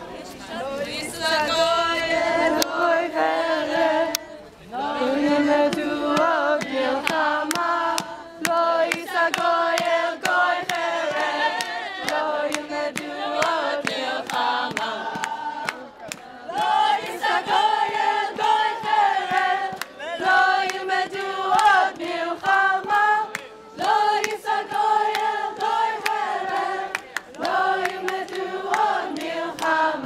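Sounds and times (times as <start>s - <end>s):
group of voices singing: 0.0s - 30.0s
hand-clapping: 5.6s - 30.0s.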